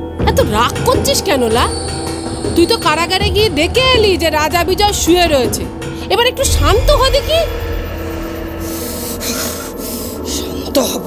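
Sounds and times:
low drone with held note: 6.5s - 10.7s.

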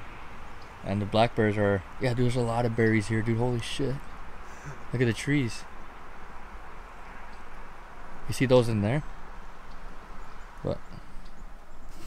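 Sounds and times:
forest background rumble and hiss: 0.0s - 12.0s.

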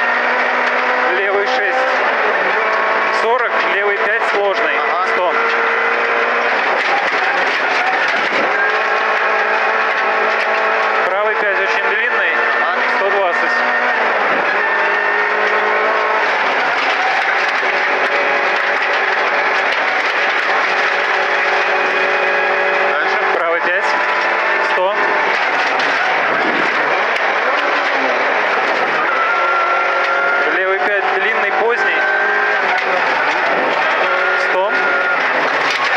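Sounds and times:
car engine at high revs: 0.0s - 35.9s
road and tyre noise: 0.0s - 35.9s.

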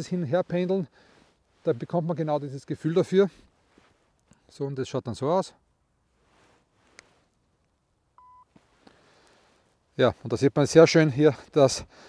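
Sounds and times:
electronic beep: 8.2s - 8.5s.

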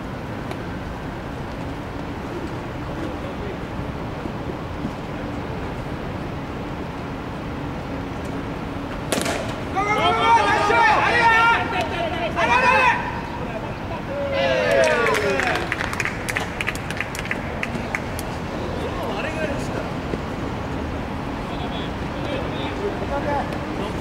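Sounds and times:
baseball bat smack: 9.1s - 9.6s
players shouting: 9.1s - 16.3s.

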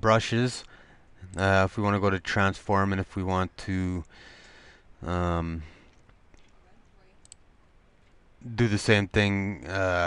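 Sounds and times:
computer mouse clicks: 7.2s - 7.4s.

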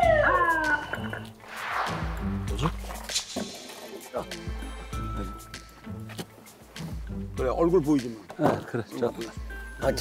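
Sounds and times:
background music with singing: 0.0s - 10.0s.

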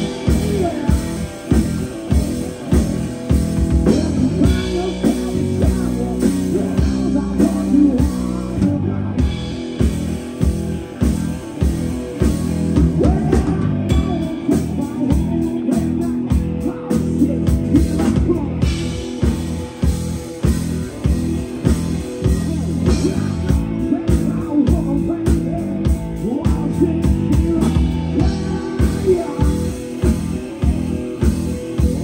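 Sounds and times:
drum kit steady beat: 0.0s - 32.0s
electric guitar: 0.0s - 32.0s.

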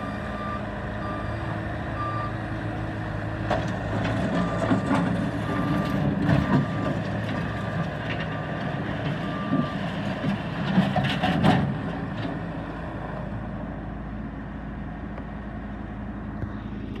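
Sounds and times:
diesel engine running: 0.0s - 17.0s.

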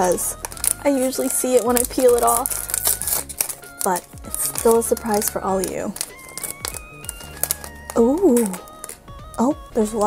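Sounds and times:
foil bag crinkling: 0.0s - 9.4s
soft high melody: 0.0s - 10.0s.

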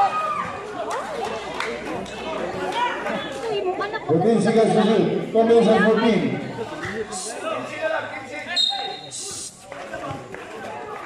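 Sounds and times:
voices of spectators and players: 0.0s - 11.0s.

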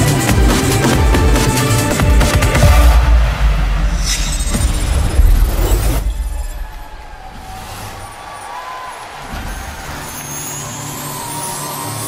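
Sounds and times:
pop music: 0.0s - 3.6s.

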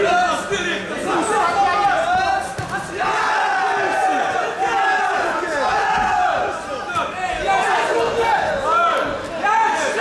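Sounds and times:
crowd shouting and yelling: 0.0s - 10.0s.

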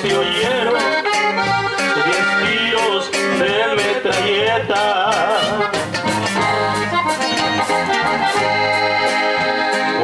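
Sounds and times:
accordion melody: 0.0s - 10.0s
bass line: 0.0s - 10.0s
strummed guitar: 0.0s - 10.0s.

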